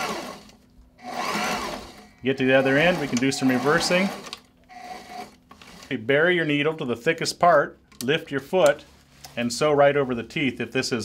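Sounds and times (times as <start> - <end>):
sewing machine whirring: 0.0 - 6.2.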